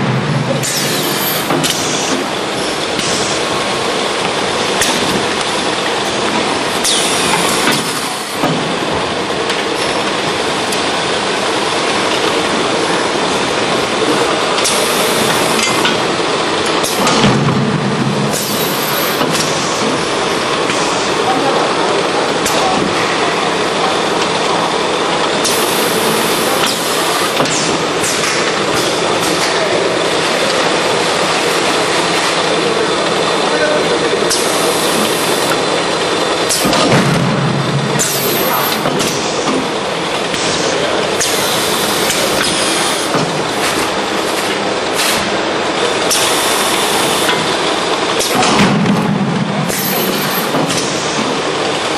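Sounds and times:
packing machine running: 0.0s - 51.9s.

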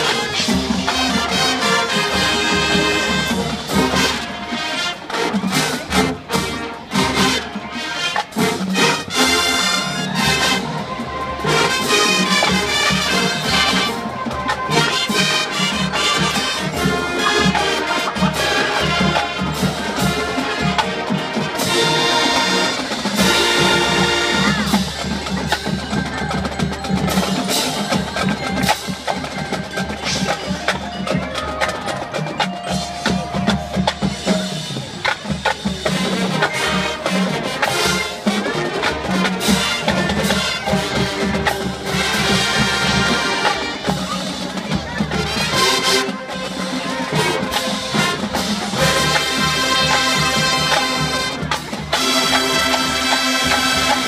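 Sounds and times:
mallet percussion: 0.0s - 54.0s
marching band playing: 0.0s - 54.0s.

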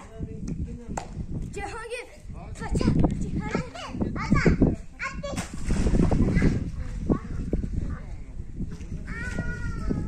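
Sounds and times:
children's voices: 1.6s - 8.2s, 9.0s - 10.0s.

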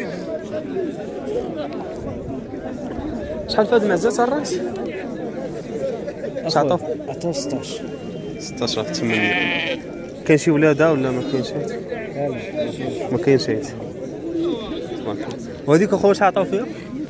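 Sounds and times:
crowd chatter: 0.0s - 17.0s
livestock bleat: 8.9s - 10.0s, 10.8s - 11.5s.

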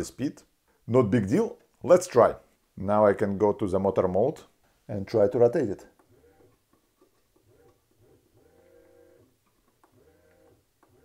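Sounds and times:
robot actuator whine: 7.5s - 9.3s.

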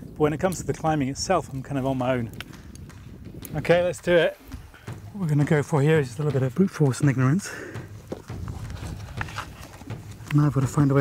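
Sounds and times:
scrapes and knocks against rock: 1.6s - 11.0s.

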